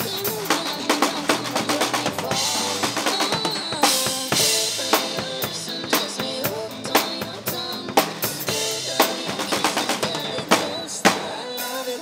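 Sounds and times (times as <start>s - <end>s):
drum kit groove: 0.0s - 12.0s
instrumental pop backing track: 0.0s - 12.0s.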